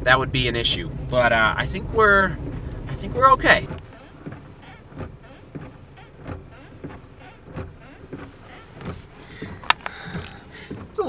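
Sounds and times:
faint knocks and rustling: 0:03.6 - 0:11.0
sharp clicks: 0:05.0 - 0:10.8.

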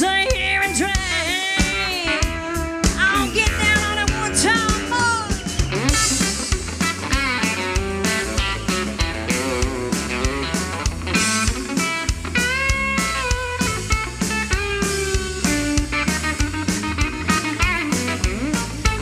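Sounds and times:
electric guitar lead bending notes: 0:00.0 - 0:19.0
live country band playing: 0:00.0 - 0:19.0
steady drum beat: 0:00.0 - 0:19.0.

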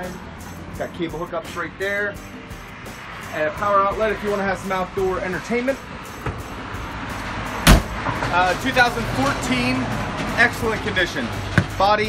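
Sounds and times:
background music: 0:00.0 - 0:12.0
storage compartment door slamming: 0:07.6 - 0:08.0.

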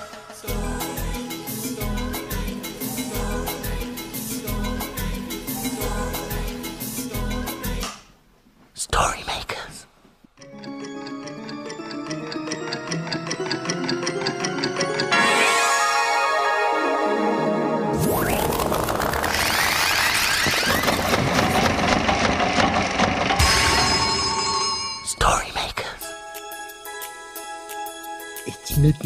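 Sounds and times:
person whispering: 0:08.7 - 0:10.0, 0:25.0 - 0:26.1
cartoon machine clattering: 0:10.5 - 0:15.5, 0:18.0 - 0:24.4
steady ringing tones: 0:22.7 - 0:25.3.

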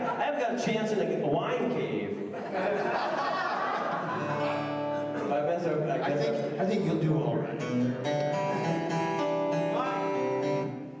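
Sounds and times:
acoustic guitars strumming: 0:04.0 - 0:11.0.

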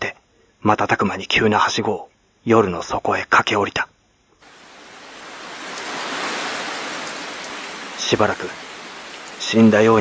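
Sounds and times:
rainfall hiss: 0:04.4 - 0:10.0.

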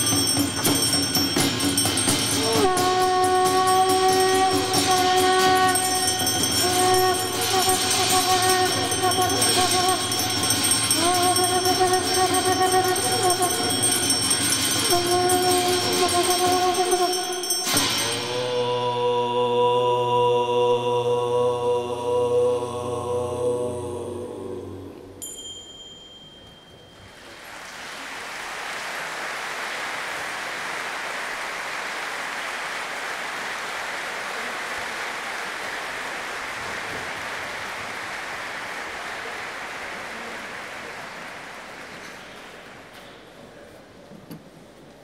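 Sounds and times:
small bell ringing: 0:00.0 - 0:18.7, 0:25.2 - 0:27.4
deep chanted drone: 0:02.3 - 0:25.2
audience applause: 0:27.1 - 0:42.9.

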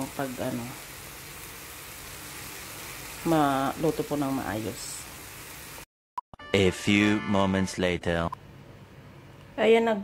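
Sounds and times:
shrimp sizzling in pan: 0:00.0 - 0:05.9.

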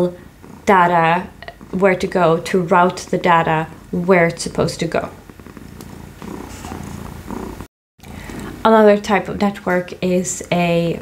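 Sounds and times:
cat purring: 0:00.0 - 0:11.0.

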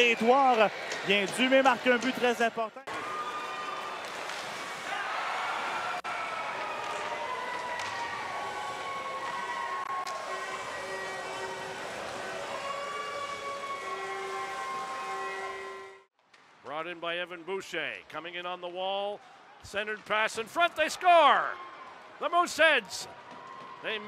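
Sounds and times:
crowd noise: 0:00.0 - 0:16.1, 0:19.0 - 0:24.0
siren-like gliding tones: 0:08.3 - 0:16.1.

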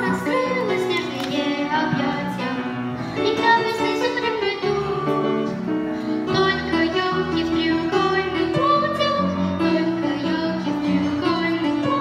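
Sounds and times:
girl singing into microphone: 0:00.0 - 0:05.6, 0:06.2 - 0:12.0
instrumental accompaniment: 0:00.0 - 0:12.0.

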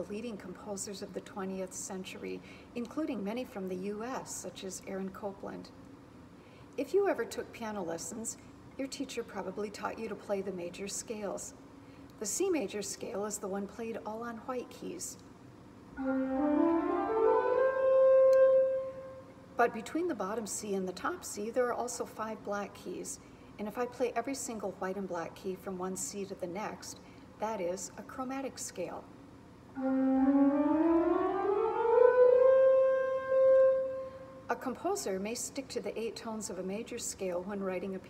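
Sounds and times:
pipe organ playing a scale: 0:16.0 - 0:19.2, 0:29.8 - 0:34.3.

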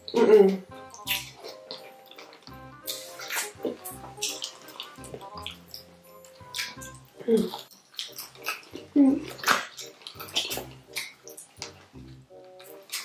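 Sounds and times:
quiet background music: 0:00.0 - 0:13.0
wet chewing and sucking mouth sounds: 0:00.0 - 0:13.0.

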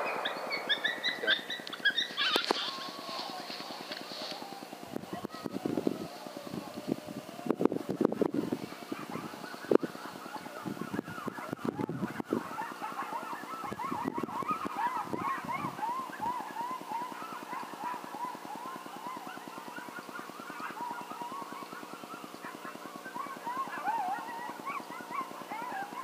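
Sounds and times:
coyotes yipping and howling: 0:00.0 - 0:26.0
steady low hum: 0:00.0 - 0:26.0.

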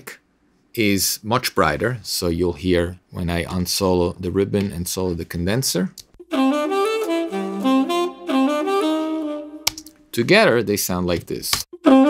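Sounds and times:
tenor saxophone jazz melody: 0:06.2 - 0:09.7, 0:11.8 - 0:12.0.

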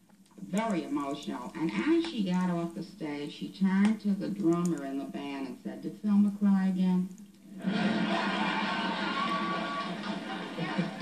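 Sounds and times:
audience laughing: 0:07.5 - 0:11.0
audience applauding: 0:07.6 - 0:11.0.

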